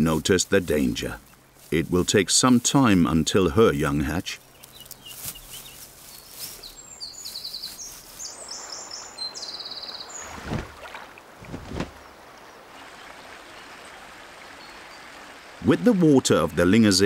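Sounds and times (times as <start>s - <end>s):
small birds chirping: 0.0s - 17.0s
flowing stream water: 8.0s - 17.0s
wing beat whooshes: 10.2s - 12.0s.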